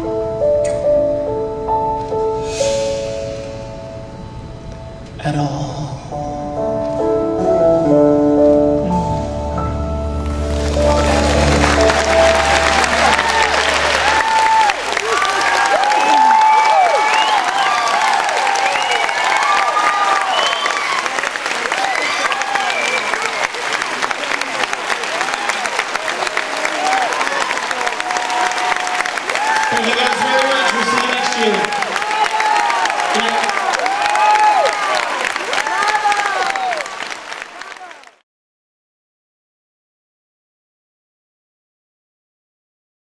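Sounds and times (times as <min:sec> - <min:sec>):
piano and bass chord ringing: 0:00.0 - 0:14.7
audience applauding and cheering: 0:10.2 - 0:38.2
whoops: 0:10.9 - 0:23.3, 0:25.2 - 0:37.0.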